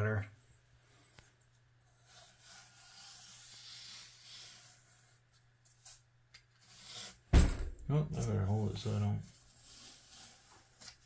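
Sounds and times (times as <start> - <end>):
fingers rubbing tape: 1.9 - 7.3, 9.4 - 11.0
loud thump: 7.3 - 7.9.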